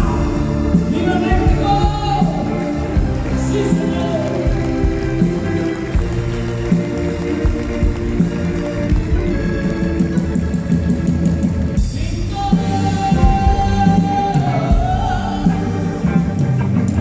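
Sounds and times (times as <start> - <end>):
electric guitar: 0.0 - 17.0
steady drum beat: 0.0 - 17.0.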